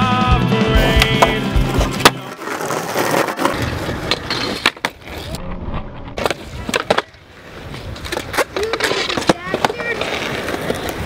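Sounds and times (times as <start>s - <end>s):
skateboard wheels rolling: 0.8s - 11.0s
skateboard clacking on landing: 6.2s - 11.0s.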